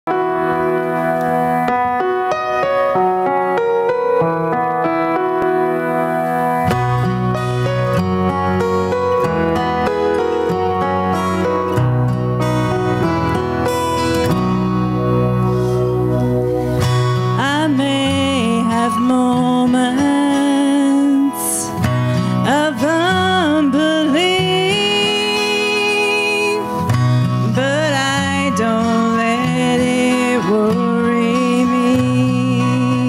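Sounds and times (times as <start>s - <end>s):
keyboard accompaniment: 0.0s - 33.0s
acoustic guitar: 0.1s - 33.0s
low bass notes: 6.7s - 19.1s
woman singing: 17.3s - 33.0s.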